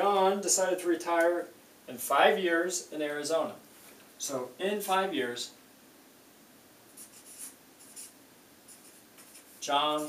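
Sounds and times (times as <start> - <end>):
marker scratching on paper: 6.9 - 9.7.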